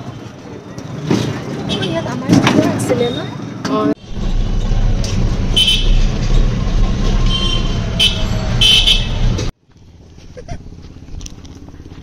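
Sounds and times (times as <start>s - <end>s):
low rumble of vehicle ride: 4.0s - 12.0s.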